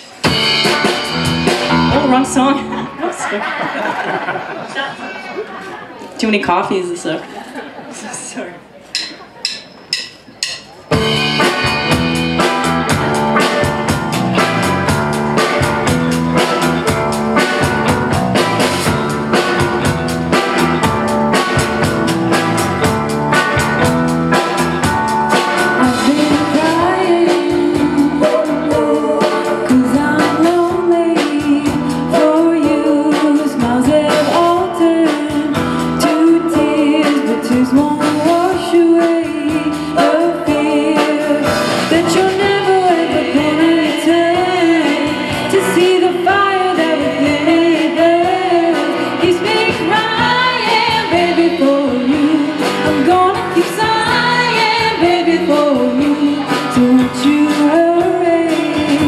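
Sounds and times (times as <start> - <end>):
electric guitar: 0.0 - 3.3, 10.9 - 59.0
drum kit beat: 0.0 - 4.4, 8.9 - 59.0
electric bass: 0.2 - 3.0, 10.9 - 59.0
woman singing: 25.7 - 59.0.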